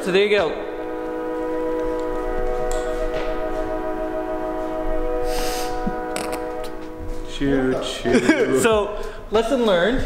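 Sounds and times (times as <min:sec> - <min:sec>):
train horn chord: 0:00.0 - 0:09.4.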